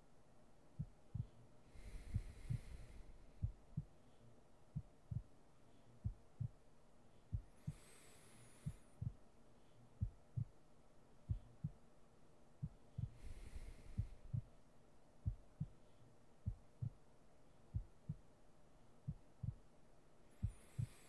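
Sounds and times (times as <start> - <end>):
slow heartbeat: 0.8 - 4.0, 4.7 - 5.4, 6.0 - 6.6, 7.3 - 9.3, 10.0 - 10.6, 11.2 - 11.8, 12.6 - 14.6, 15.2 - 17.0, 17.7 - 18.3, 19.0 - 19.7, 20.3 - 21.0.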